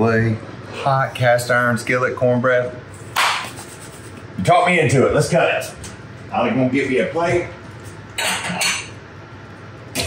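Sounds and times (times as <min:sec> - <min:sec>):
clatter of dishes: 0:08.2 - 0:09.0.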